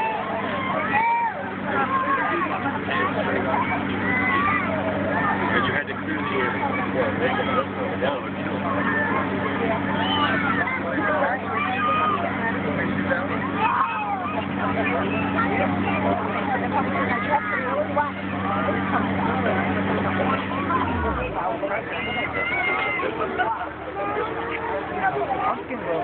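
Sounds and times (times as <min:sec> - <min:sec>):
children chattering: 0:00.0 - 0:26.0
compressor motor humming: 0:00.0 - 0:26.0.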